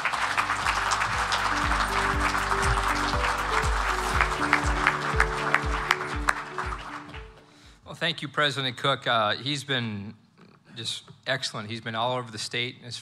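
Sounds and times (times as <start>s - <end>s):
music with steady low beat: 0.0s - 7.5s
audience applauding: 0.0s - 7.8s.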